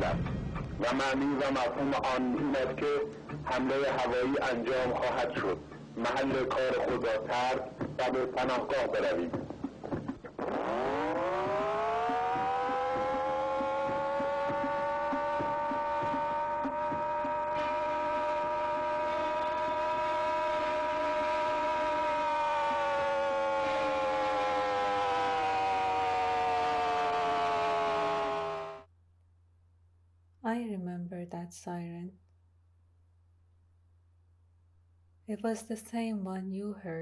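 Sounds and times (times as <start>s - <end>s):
air-raid siren wailing: 10.4s - 28.9s.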